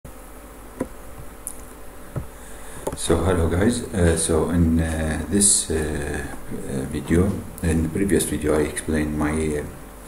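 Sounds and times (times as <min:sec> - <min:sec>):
electrical buzz and hiss: 0:00.1 - 0:10.0.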